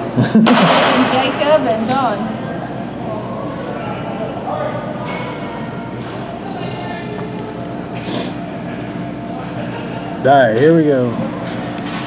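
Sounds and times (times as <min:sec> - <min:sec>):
arena hum: 0:00.0 - 0:12.0.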